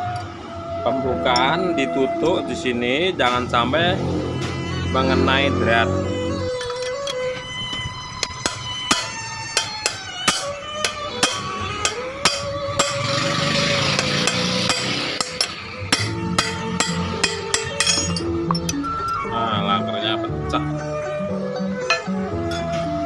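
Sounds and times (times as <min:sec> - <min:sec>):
background music: 0:00.0 - 0:23.0
hammer tapping on metal punch: 0:08.4 - 0:13.0, 0:14.0 - 0:18.8.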